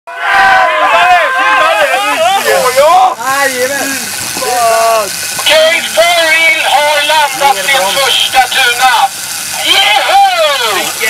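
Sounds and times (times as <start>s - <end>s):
men talking over one another: 0.1s - 11.0s.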